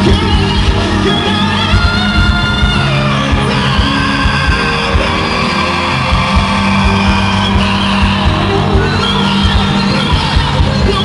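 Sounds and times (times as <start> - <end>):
loud live band music: 0.0 - 11.0.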